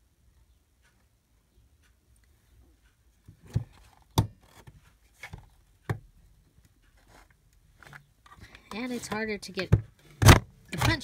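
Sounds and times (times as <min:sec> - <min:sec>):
craft punch clacking through card: 0:10.2 - 0:11.0.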